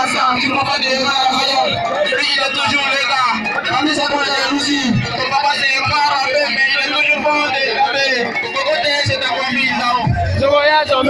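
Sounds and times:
loud music over sound system: 0:00.0 - 0:11.0
man speaking into a microphone: 0:00.0 - 0:11.0.

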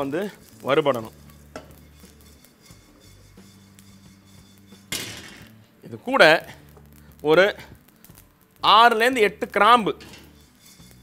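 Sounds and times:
spatula scraping in a wok: 0:00.0 - 0:11.0.

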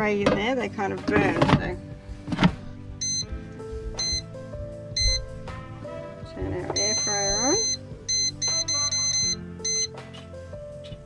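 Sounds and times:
background music: 0:00.0 - 0:11.0
short high electronic beeps: 0:06.8 - 0:10.0.

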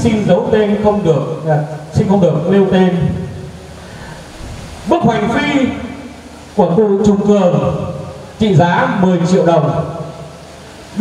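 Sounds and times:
man speaking over loudspeakers: 0:00.0 - 0:03.5, 0:04.8 - 0:10.2
low background noise: 0:00.0 - 0:11.0.

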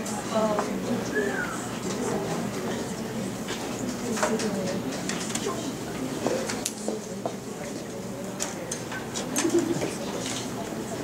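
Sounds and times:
voices murmuring: 0:00.0 - 0:11.0.

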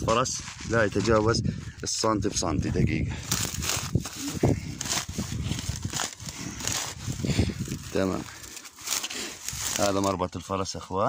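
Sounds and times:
footsteps on dry grass and rock: 0:00.0 - 0:10.2.

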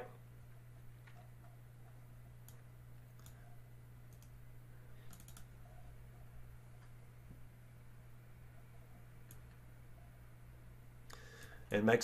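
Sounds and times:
low electrical hum: 0:00.0 - 0:12.0
computer mouse clicks: 0:01.0 - 0:03.5, 0:04.1 - 0:04.4, 0:05.0 - 0:05.8, 0:09.2 - 0:09.6.

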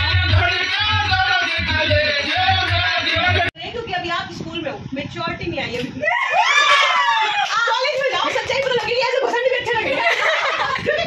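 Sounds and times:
high-pitched female squeal: 0:06.0 - 0:07.8.

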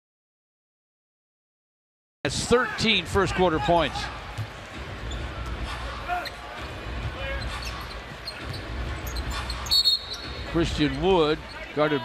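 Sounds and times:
high shoe squeak: 0:06.1 - 0:11.8.

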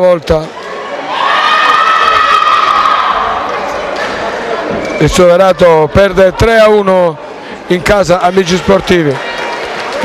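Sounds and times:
crowd cheering: 0:00.5 - 0:06.7, 0:07.8 - 0:10.0.

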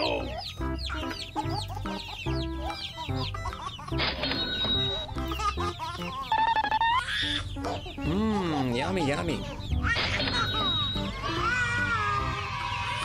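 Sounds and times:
baby chicks peeping: 0:00.0 - 0:13.0.

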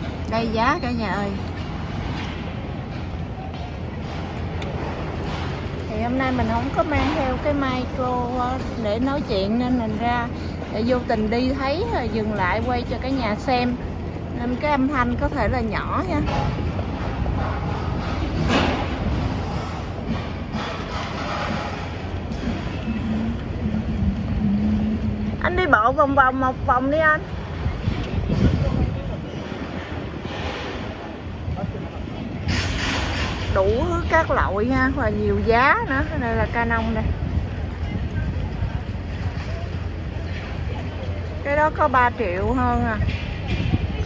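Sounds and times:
faint street noise: 0:00.0 - 0:44.0
traffic rumble: 0:00.0 - 0:44.0
wind buffeting microphone: 0:00.0 - 0:44.0.

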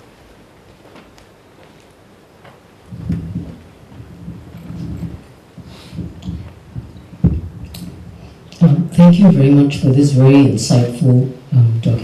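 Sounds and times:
microphone handling noise: 0:02.4 - 0:09.9.

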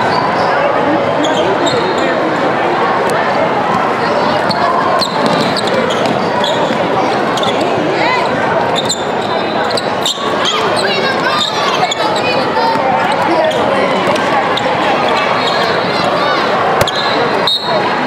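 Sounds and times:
voices echoing in hall: 0:00.0 - 0:18.0
shoes squeaking on floor: 0:01.2 - 0:02.2, 0:04.4 - 0:15.9, 0:16.8 - 0:17.8.

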